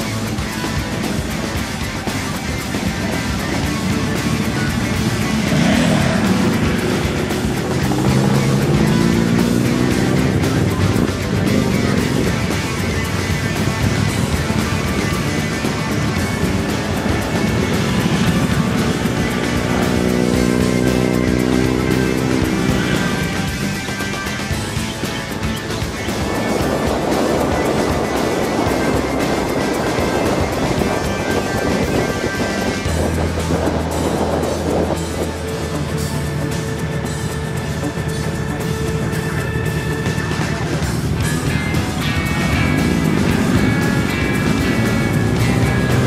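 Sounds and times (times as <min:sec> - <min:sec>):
background music: 0:00.0 - 0:46.0
motorcycles accelerating past: 0:00.0 - 0:46.0.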